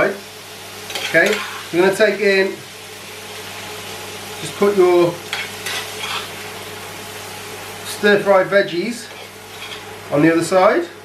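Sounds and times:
steady low hiss: 0.0s - 11.0s
spoon scraping a pan: 0.9s - 1.7s, 5.3s - 6.4s, 9.0s - 9.9s.

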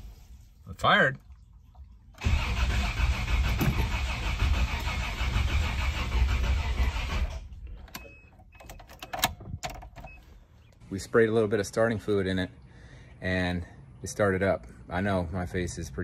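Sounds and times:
engine cranking and running: 2.2s - 8.0s.

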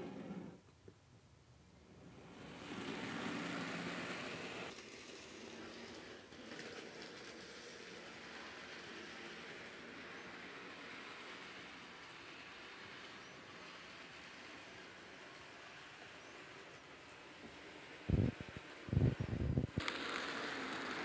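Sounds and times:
model train motor whirring: 2.1s - 21.0s.

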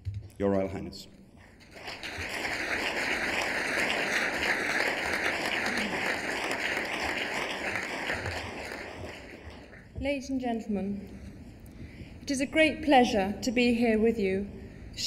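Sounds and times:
audience applauding: 1.5s - 9.8s.

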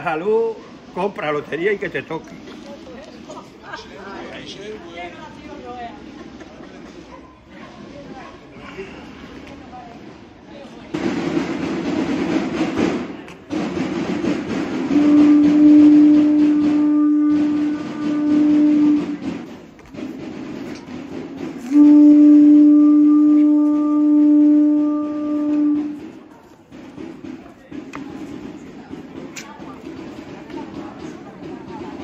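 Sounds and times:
long horn-like notes: 14.9s - 19.2s, 21.6s - 26.0s.

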